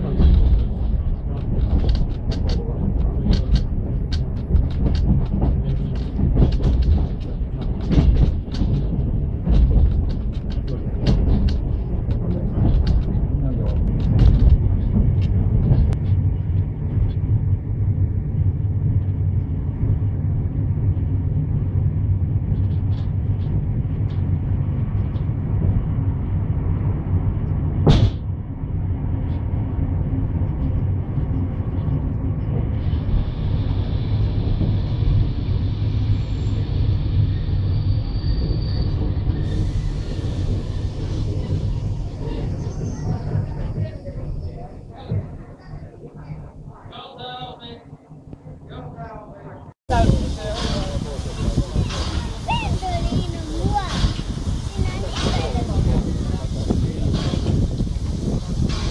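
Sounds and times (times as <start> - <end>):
train carriage rumbling on track: 0.0 - 58.9.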